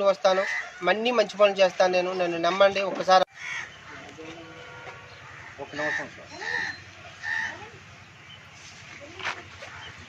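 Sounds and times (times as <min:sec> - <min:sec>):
bird calling: 0:03.3 - 0:10.0.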